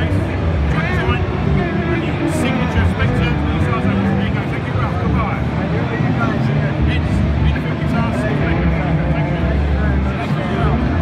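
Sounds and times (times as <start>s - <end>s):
bass-heavy music: 0.0s - 11.0s
many people talking: 0.0s - 11.0s.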